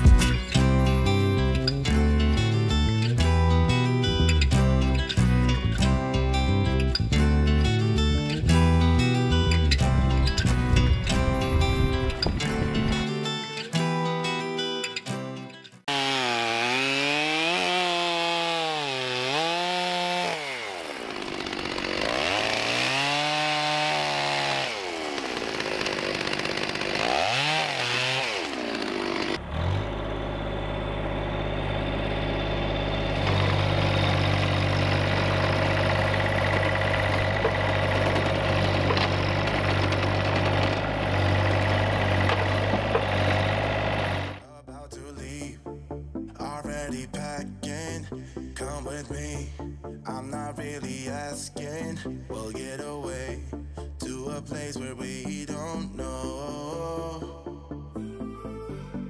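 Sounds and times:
machine engine running: 24.8s - 44.4s.

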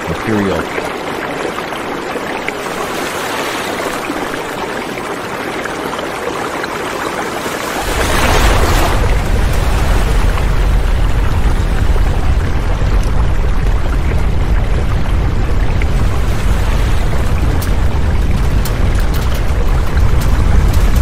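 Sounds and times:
steady rushing noise: 7.3s - 21.0s
deep earthquake rumble: 7.8s - 21.0s.

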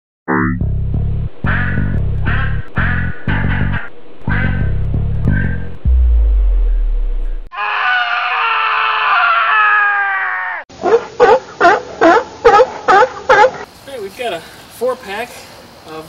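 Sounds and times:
low bass note: 0.3s - 7.5s.

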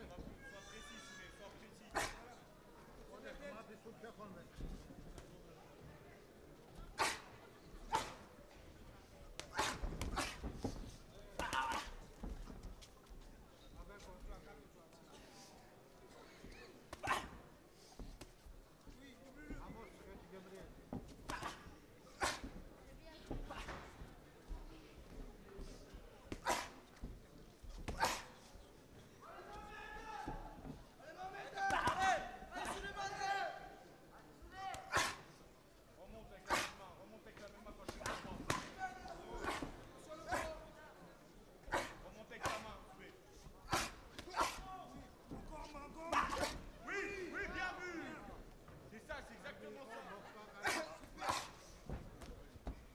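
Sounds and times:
low background voices: 0.0s - 52.9s
people shouting: 31.6s - 32.8s, 43.7s - 44.7s.

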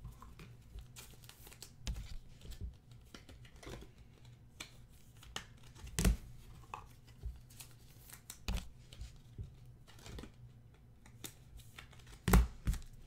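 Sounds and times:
cards rustling and clicking: 0.1s - 13.0s.

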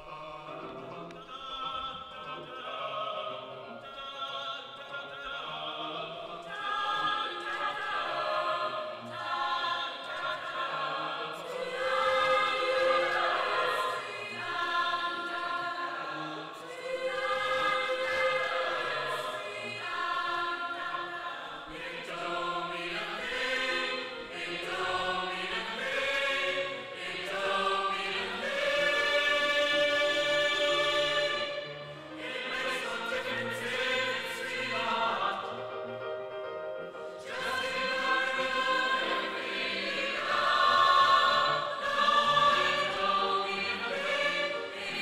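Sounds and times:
mixed choir singing: 0.0s - 45.0s.

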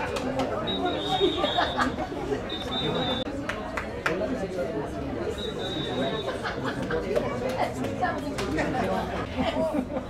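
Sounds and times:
chatter of several voices: 0.0s - 10.0s.

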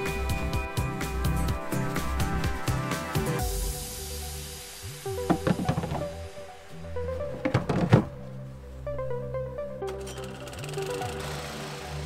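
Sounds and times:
drum hits: 5.2s - 6.2s.

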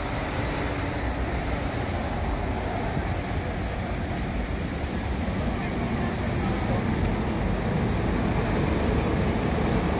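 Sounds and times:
bus rumbling: 0.0s - 9.9s
road noise: 0.0s - 9.9s.

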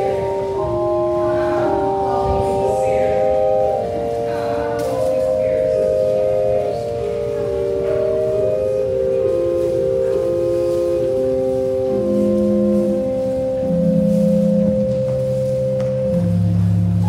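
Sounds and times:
pipe organ playing slowly: 0.0s - 17.0s.

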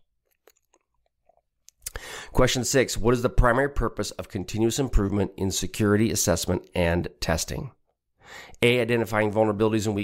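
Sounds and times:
mouth clicks and lip smacks: 0.2s - 2.0s.

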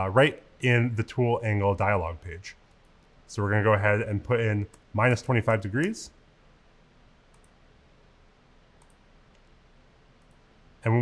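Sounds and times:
computer mouse clicks: 2.7s - 3.1s, 7.3s - 7.6s, 8.8s - 9.5s, 10.2s - 10.5s.

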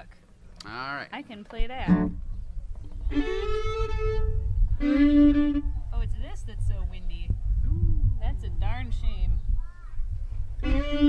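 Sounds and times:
wind rumble on microphone: 1.6s - 11.0s
fiddle bowing long notes: 3.0s - 5.8s, 10.6s - 11.0s.

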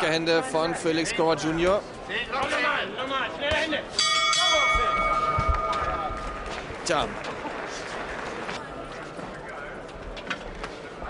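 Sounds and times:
boxing ring bell ringing: 4.0s - 6.6s.

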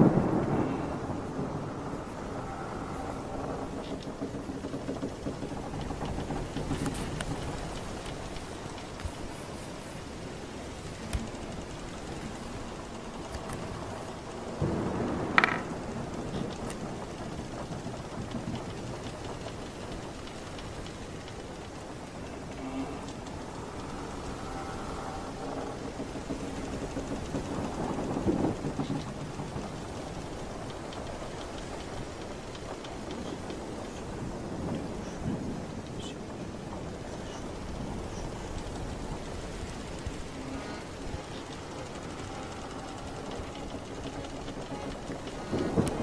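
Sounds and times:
rumbling surge: 0.0s - 46.0s
rushing sea and weather: 0.0s - 46.0s.

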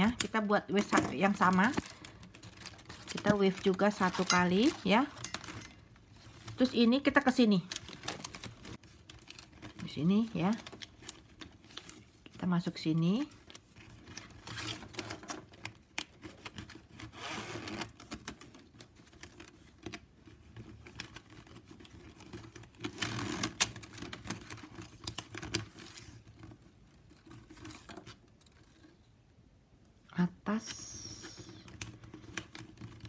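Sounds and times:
plastic strips rustling and scraping: 0.0s - 29.2s, 31.2s - 33.0s.

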